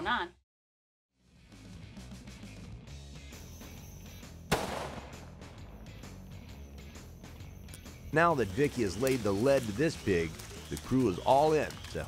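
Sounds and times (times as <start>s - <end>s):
background music: 1.2s - 12.0s
loud rifle shot: 4.5s - 5.4s.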